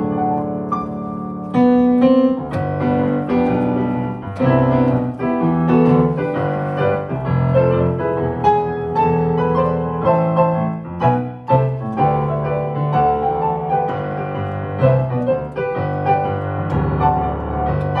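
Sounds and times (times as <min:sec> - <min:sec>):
slow solo piano piece: 0:00.0 - 0:18.0.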